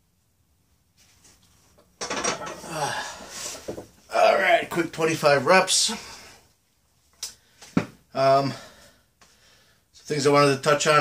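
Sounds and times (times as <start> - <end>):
man breathing hard: 2.6 - 3.7, 8.4 - 9.9.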